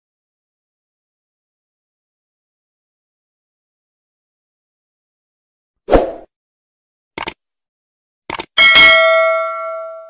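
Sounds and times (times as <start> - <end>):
mouse clicks: 7.2 - 7.4, 8.3 - 8.5
bell ding: 8.6 - 10.0.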